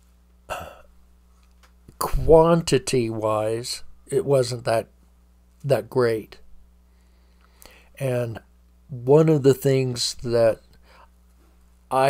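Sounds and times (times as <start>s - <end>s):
faint low room hum: 0.0s - 12.0s
sharp intake of breath: 6.9s - 8.0s.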